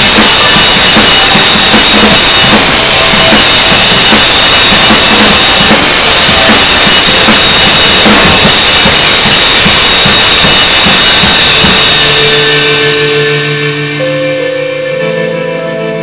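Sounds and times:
cymbals washing: 0:00.0 - 0:16.0
drum kit played hard: 0:00.0 - 0:16.0
song with held notes: 0:10.8 - 0:16.0.

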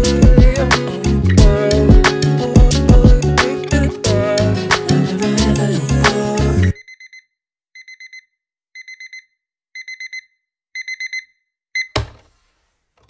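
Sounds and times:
electronic alarm beeping: 0:06.7 - 0:12.0
thump: 0:11.9 - 0:12.4.

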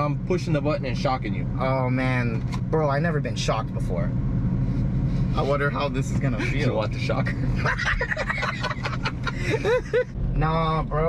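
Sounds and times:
low hum in truck cab: 0:00.0 - 0:11.0
men laughing: 0:06.2 - 0:10.2.

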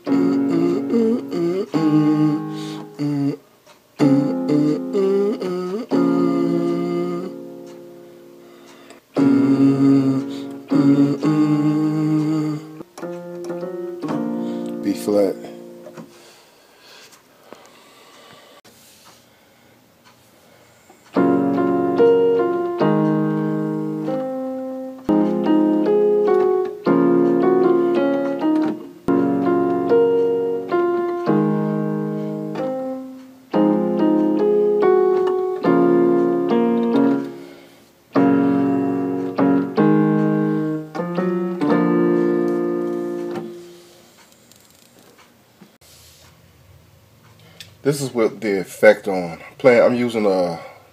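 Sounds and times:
electronic keyboard playing piano chords: 0:00.0 - 0:03.4, 0:04.0 - 0:16.3, 0:21.1 - 0:44.0.

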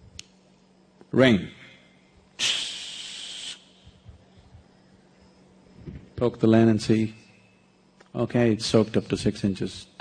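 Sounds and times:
faint steady hum: 0:00.0 - 0:10.0
man hissing shhh: 0:02.4 - 0:04.1.

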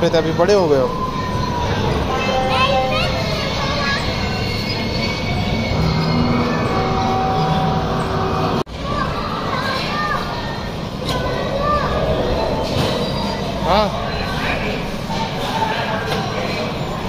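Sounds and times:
steady mechanical rumble: 0:00.0 - 0:09.4.

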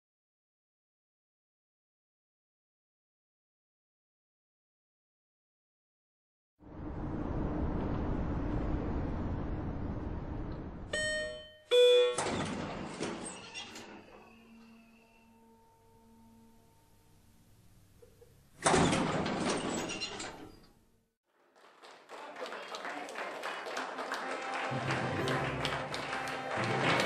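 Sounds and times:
elevator chimes: 0:10.9 - 0:17.1
elevator doors sliding: 0:11.2 - 0:15.7, 0:18.6 - 0:20.8.

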